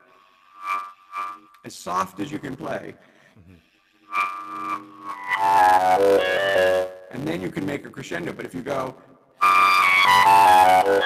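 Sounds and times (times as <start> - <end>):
clarinet playing: 4.1 - 7.1, 9.4 - 11.0.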